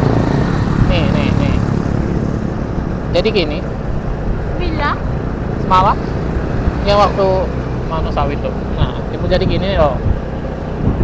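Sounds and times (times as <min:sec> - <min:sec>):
motorcycle engine: 0:00.0 - 0:11.0
wind rush on microphone: 0:00.0 - 0:11.0
person speaking: 0:00.8 - 0:01.7, 0:06.8 - 0:10.0.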